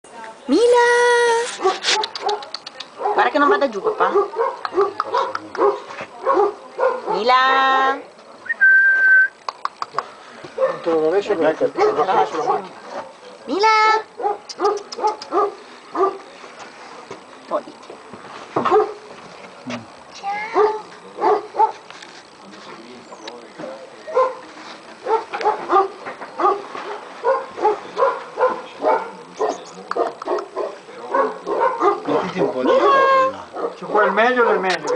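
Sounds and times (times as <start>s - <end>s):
person whistling a high note: 8.5s - 9.4s
puppy crying: 32.6s - 33.7s.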